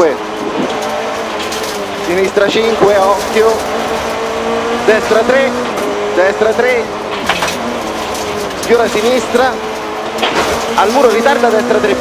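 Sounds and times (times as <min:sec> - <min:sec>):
car engine at high revs: 0:00.0 - 0:12.0
road and tyre noise: 0:00.0 - 0:12.0.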